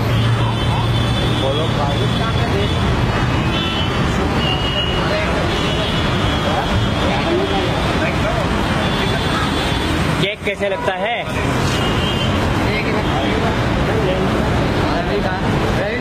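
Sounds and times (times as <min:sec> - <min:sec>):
traffic hum: 0:00.0 - 0:16.0
background voices chatter: 0:04.0 - 0:16.0.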